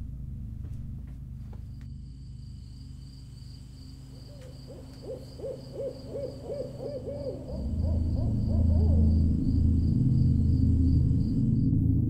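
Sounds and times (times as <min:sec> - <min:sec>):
low rumbling drone: 0:00.0 - 0:12.0
owl hooting: 0:03.6 - 0:10.6.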